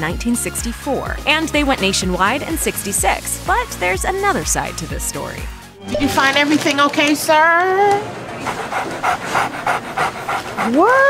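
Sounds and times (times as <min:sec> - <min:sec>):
small dog panting: 0:08.4 - 0:11.0.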